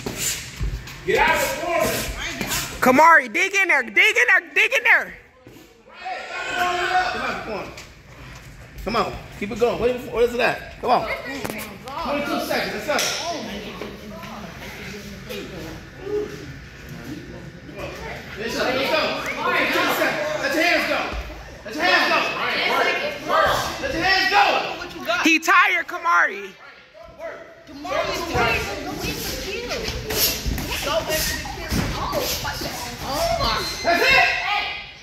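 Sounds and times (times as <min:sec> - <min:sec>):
voices talking and calling out: 0:00.0 - 0:35.0
person shouting coaching: 0:01.1 - 0:05.3, 0:21.7 - 0:28.7.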